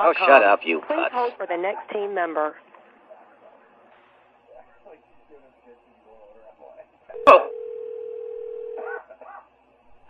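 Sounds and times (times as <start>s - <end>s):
faint muffled voices: 0.8s - 7.6s, 8.8s - 10.0s
steady telephone tone: 7.2s - 8.8s.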